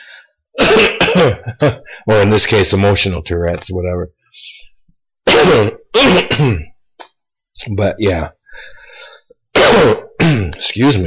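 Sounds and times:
man coughing: 0.6 - 2.0, 5.2 - 6.8, 9.5 - 10.7.

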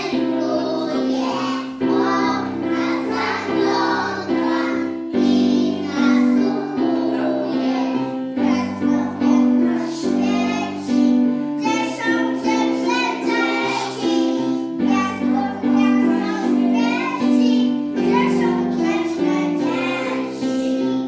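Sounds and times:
instrumental accompaniment: 0.0 - 21.0
young children singing: 0.0 - 21.0.

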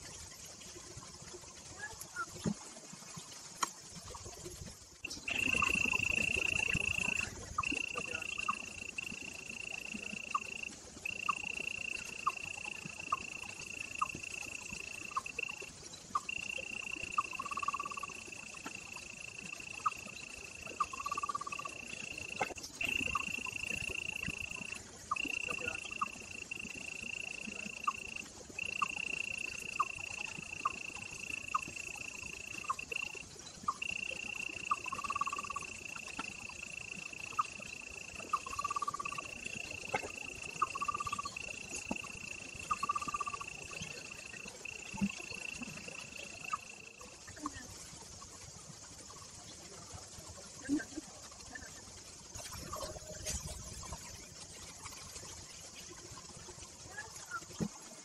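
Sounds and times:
high-pitched insect chorus: 0.0 - 58.0
insect chirps and calls: 0.0 - 58.0.

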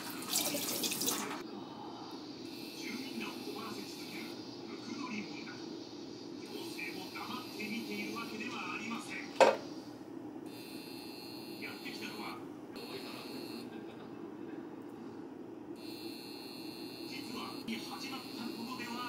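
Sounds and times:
induction hob high-pitched whine: 0.0 - 19.0
low steady hum: 0.0 - 19.0.

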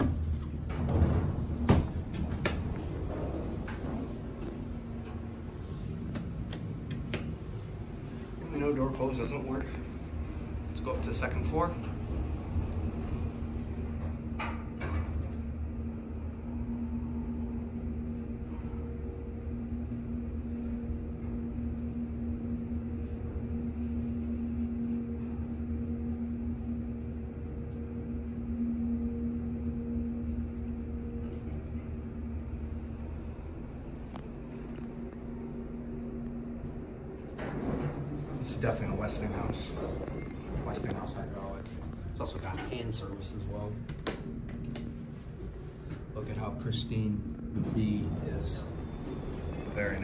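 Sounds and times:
elevator doors sliding shut: 0.0 - 15.6, 36.4 - 50.0
elevator pump motor humming: 0.0 - 50.0.

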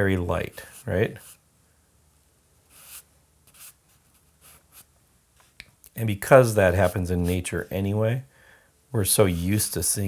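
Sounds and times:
charcoal scratching on paper: 2.7 - 4.9.

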